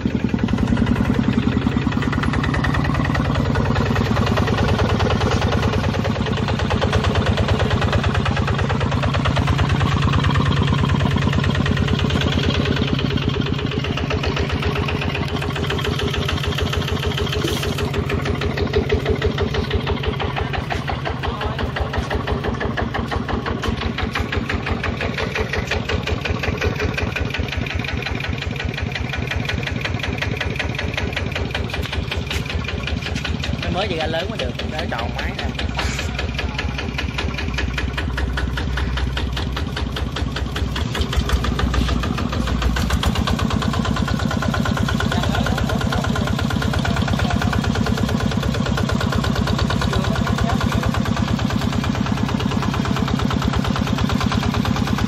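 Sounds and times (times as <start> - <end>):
diesel engine chugging: 0.0 - 55.0.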